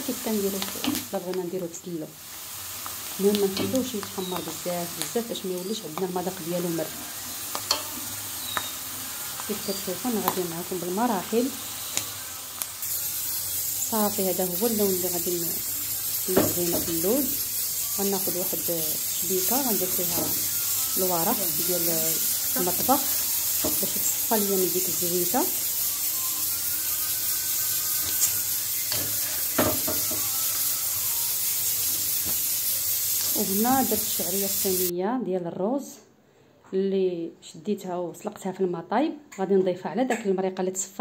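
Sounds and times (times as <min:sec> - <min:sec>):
almonds sizzling in hot oil: 0:00.0 - 0:34.9.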